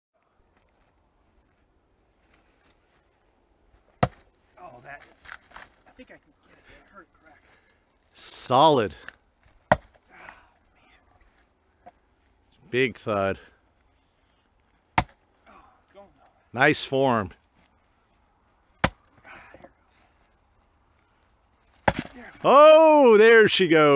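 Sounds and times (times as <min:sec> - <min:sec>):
soft rustles: 0:00.3 - 0:08.2, 0:17.4 - 0:22.4
splitting maul striking log: 0:04.0 - 0:04.2, 0:09.7 - 0:10.0, 0:15.0 - 0:15.2, 0:18.8 - 0:19.0, 0:21.8 - 0:22.2.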